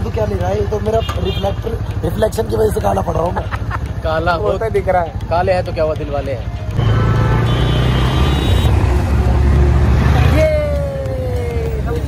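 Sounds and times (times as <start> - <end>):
motorbike engine and road rumble: 0.0 - 12.0.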